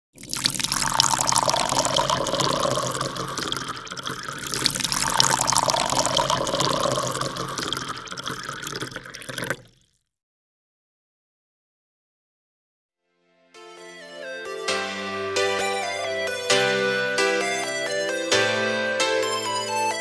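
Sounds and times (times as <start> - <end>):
water splashing and pouring: 0.0 - 10.0.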